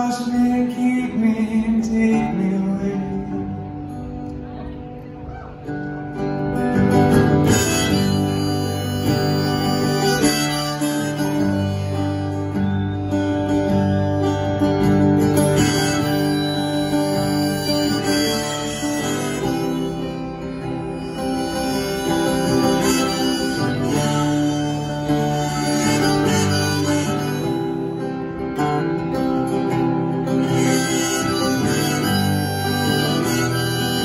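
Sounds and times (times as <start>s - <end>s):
acoustic guitar strumming: 0.0s - 34.0s
harmonica long notes: 5.6s - 34.0s.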